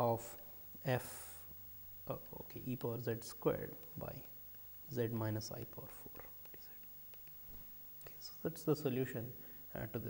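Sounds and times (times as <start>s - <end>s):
low steady hum: 0.0s - 10.0s
faint clicks: 3.3s - 8.4s.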